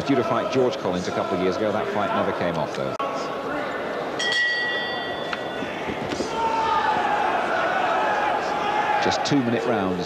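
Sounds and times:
crowd murmur: 0.0s - 10.0s
boxing ring bell ringing: 4.2s - 5.8s.

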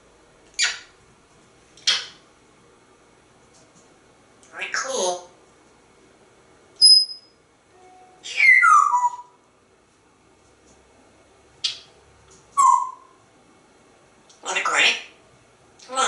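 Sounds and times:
parrot whistling and calling: 0.6s - 0.9s, 6.8s - 7.3s, 8.2s - 9.4s, 12.6s - 13.2s.

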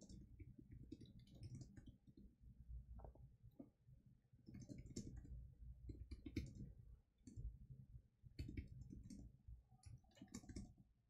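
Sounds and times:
faint keyboard typing: 0.0s - 2.2s, 4.4s - 7.5s, 8.4s - 10.9s.

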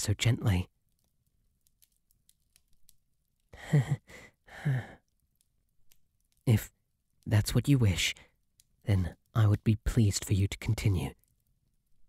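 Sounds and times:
faint clicks: 0.2s - 3.6s, 4.3s - 6.5s, 8.2s - 9.7s
man laughing softly: 3.6s - 5.0s.

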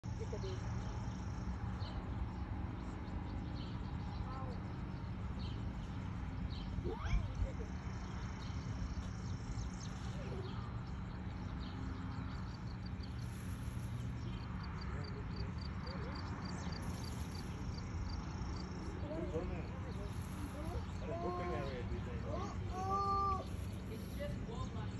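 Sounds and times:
low outdoor rumble: 0.0s - 24.9s.

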